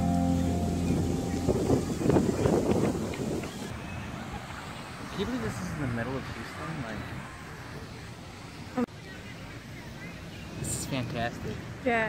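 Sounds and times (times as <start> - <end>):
wind on microphone: 0.0 - 3.7
distant indistinct voices: 0.0 - 12.0.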